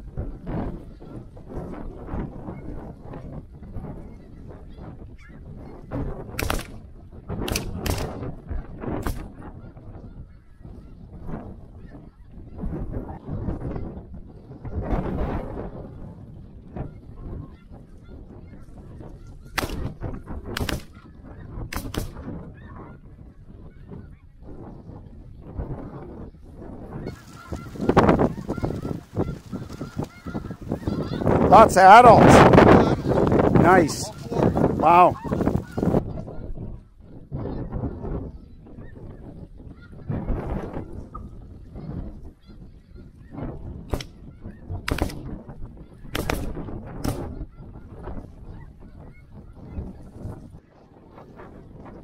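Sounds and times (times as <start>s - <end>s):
shotgun shots: 6.4s - 6.8s, 7.4s - 8.2s, 19.6s - 19.9s, 20.6s - 21.0s, 21.7s - 22.2s, 44.9s - 45.2s, 46.1s - 47.3s
geese honking: 27.0s - 36.0s.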